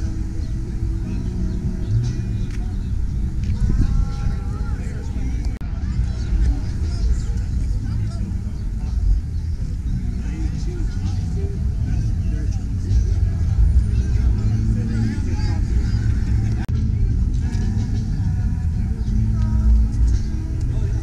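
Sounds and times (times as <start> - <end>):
crowd chatter: 0.0 - 21.0
steady low rumble: 0.0 - 21.0.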